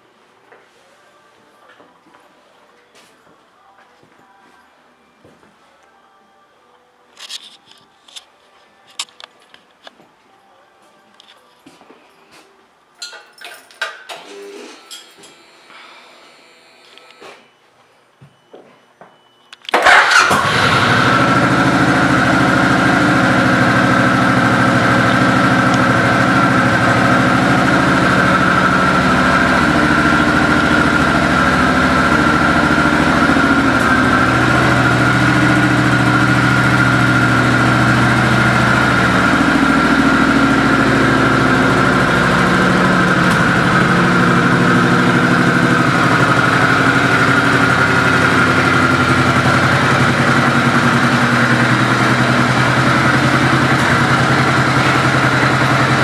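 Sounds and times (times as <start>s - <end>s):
motorcycle engine starting and idling: 19.7s - 56.0s.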